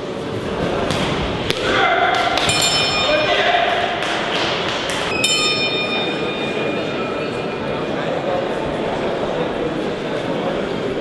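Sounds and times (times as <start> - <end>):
crowd noise in a hall: 0.0 - 11.0
boxing ring bell ringing: 2.4 - 3.7, 5.1 - 8.0.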